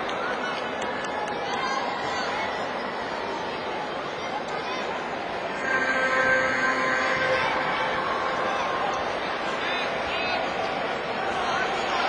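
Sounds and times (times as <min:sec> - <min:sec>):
crowd hubbub in sports hall: 0:00.0 - 0:12.0
faint held tone: 0:05.5 - 0:08.8.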